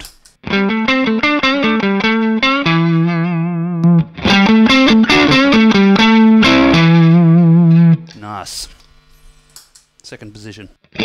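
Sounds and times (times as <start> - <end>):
electric guitar single-note phrase: 0.4 - 8.2.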